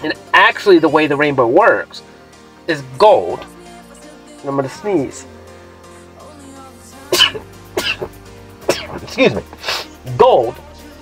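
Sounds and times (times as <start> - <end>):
background music: 0.0 - 11.0
man sneezing: 7.1 - 10.0.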